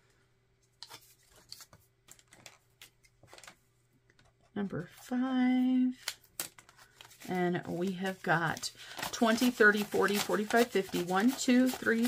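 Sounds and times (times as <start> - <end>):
paper handling: 0.8 - 3.6, 6.0 - 12.0.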